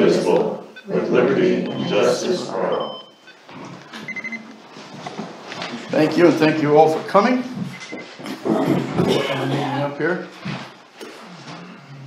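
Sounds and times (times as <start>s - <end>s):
low room noise: 0.0s - 12.0s
short electronic beep: 4.1s - 4.4s.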